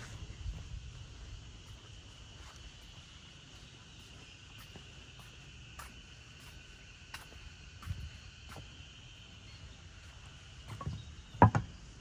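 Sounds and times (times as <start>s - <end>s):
high-pitched insect drone: 0.0s - 12.0s
dull knocks: 10.8s - 11.8s.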